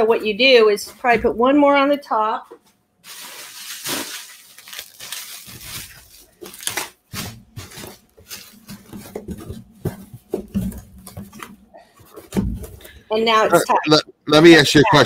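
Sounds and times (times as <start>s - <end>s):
bubble wrap crinkling: 3.0s - 10.4s.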